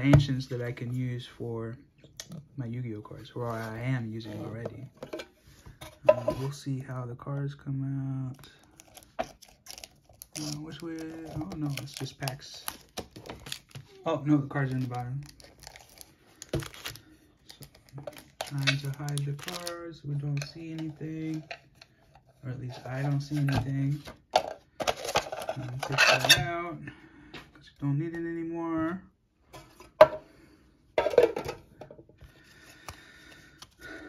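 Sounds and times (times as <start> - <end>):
plastic packaging crinkling: 8.6 - 19.8.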